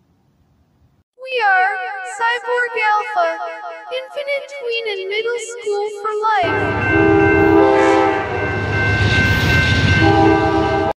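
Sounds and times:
train horn: 6.4 - 8.6, 10.0 - 11.0
train rumble: 6.4 - 11.0.

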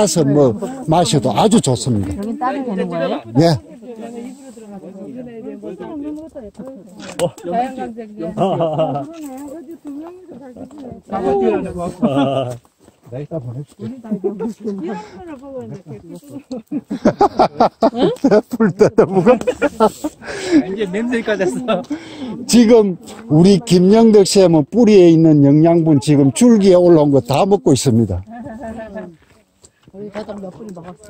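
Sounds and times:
voices talking quietly: 0.0 - 31.0.

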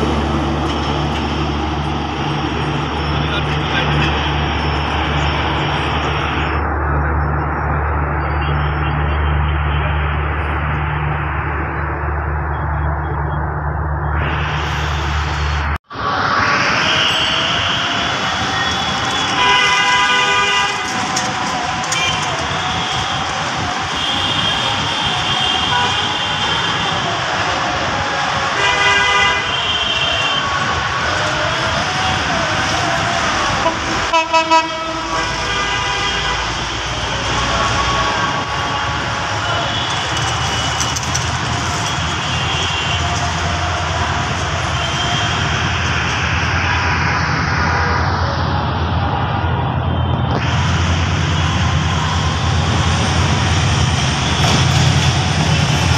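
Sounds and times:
locomotive engine rumble: 0.0 - 35.7, 36.4 - 55.9
steady background noise: 0.0 - 55.9
locomotive horn blasts: 18.6 - 21.1, 28.6 - 30.7, 33.6 - 43.8.

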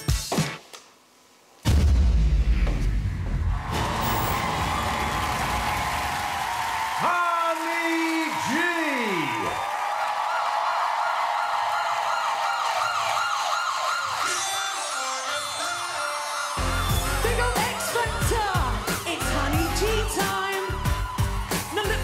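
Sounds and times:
crowd noise: 3.5 - 22.0
warbling siren wail: 11.8 - 15.4.

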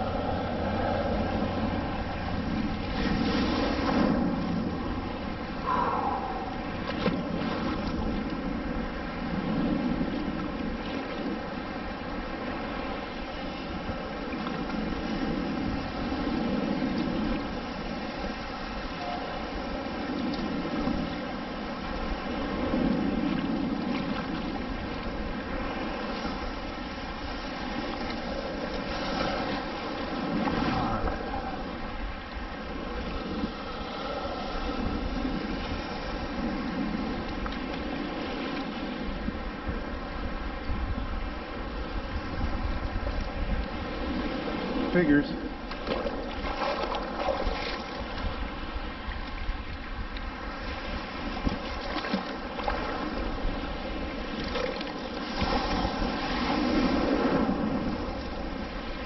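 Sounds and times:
surf sloshing around legs: 0.0 - 59.0
wind buffeting microphone: 0.0 - 59.0.

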